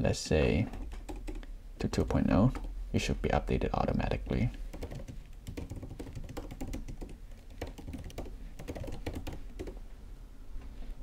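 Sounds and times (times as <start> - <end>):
typing on a keyboard: 0.7 - 1.4, 4.7 - 9.8.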